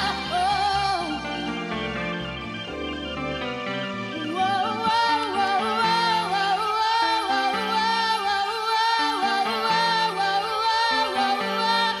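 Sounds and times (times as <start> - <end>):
music with wavering melody: 0.0 - 12.0.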